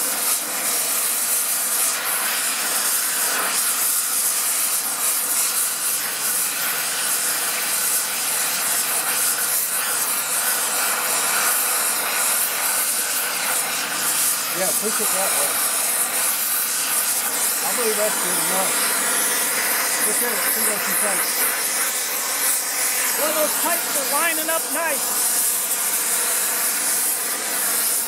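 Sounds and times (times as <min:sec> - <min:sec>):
cutting torch flame hissing: 0:00.0 - 0:28.0.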